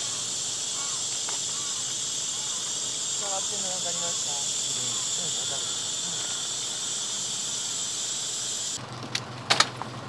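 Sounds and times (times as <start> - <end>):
high hiss: 0.0 - 8.8
engine idling hum: 0.0 - 10.0.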